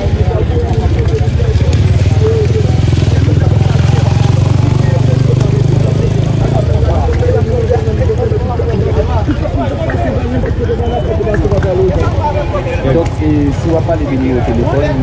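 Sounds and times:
motorcycle engine running: 0.0 - 15.0
street voices: 0.0 - 15.0.

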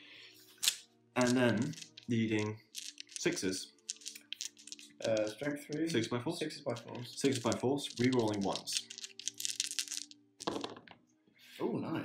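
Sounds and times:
dice rattling in hand: 0.6 - 6.1, 6.7 - 10.9
dice tumbling onto cloth mat: 0.6 - 6.1, 6.7 - 11.0.

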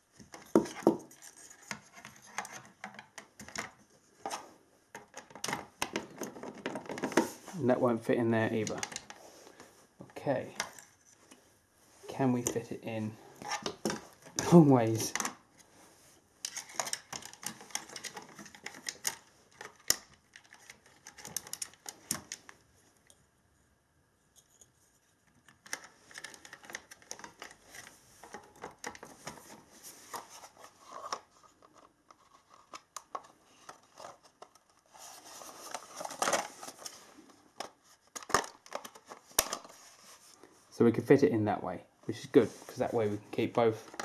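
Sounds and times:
plastic parts clicking and scraping: 0.2 - 7.6, 8.4 - 11.4, 13.4 - 15.7, 16.4 - 23.2, 24.3 - 40.2, 43.8 - 44.0.

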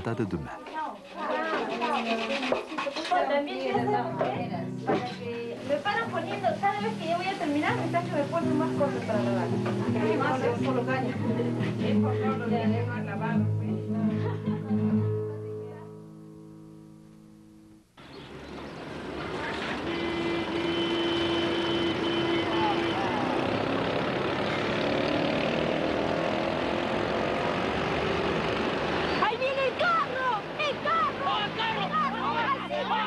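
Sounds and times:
excited voices: 29.2 - 33.0.

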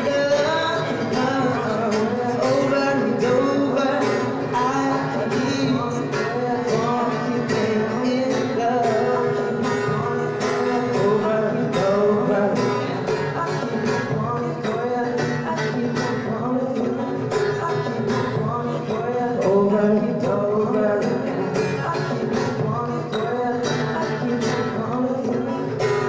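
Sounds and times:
acoustic guitar: 0.0 - 26.0
backing vocals: 0.0 - 26.0
man singing: 0.0 - 26.0
percussive beat: 0.0 - 26.0.

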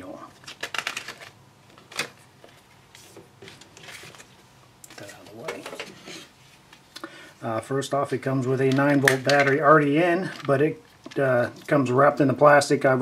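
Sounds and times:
paper pages being leafed through: 0.4 - 5.5.

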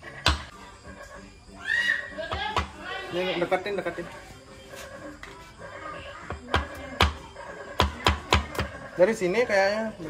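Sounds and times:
knife chopping on wooden board: 7.8 - 8.7.

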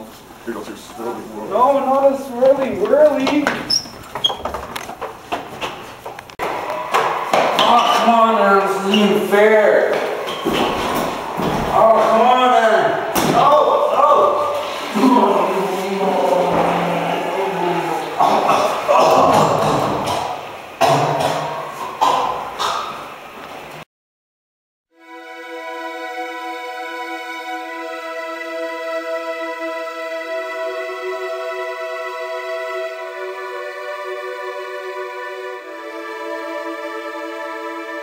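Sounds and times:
young men shouting: 6.4 - 20.3
sharp bang: 13.1 - 13.6.

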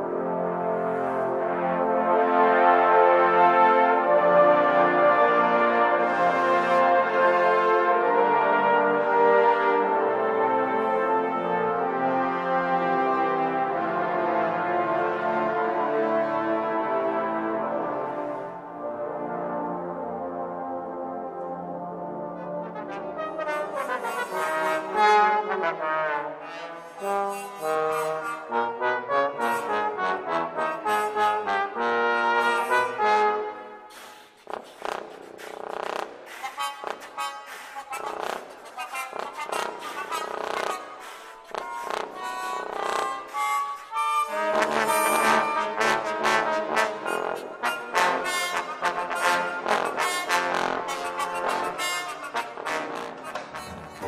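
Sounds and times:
trombone choir sustained chords: 0.0 - 34.7, 39.0 - 54.0
trombone ensemble detached notes: 0.0 - 54.0.

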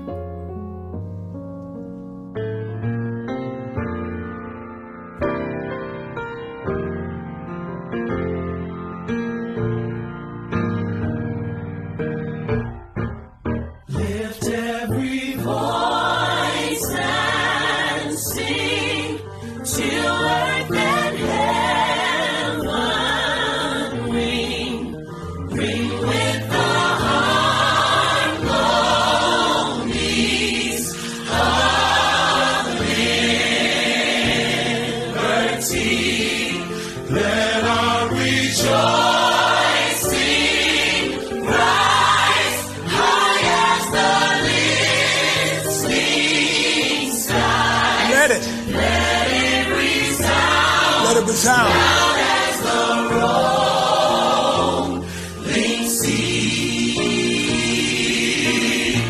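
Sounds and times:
gospel choir singing: 13.6 - 59.0.

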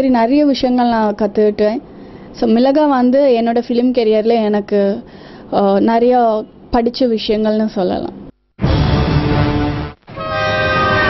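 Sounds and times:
train horn blast: 10.1 - 11.0.

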